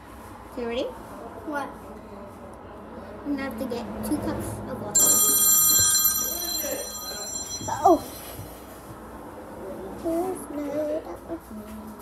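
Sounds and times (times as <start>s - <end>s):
high ringing bell tone: 5.0s - 8.6s.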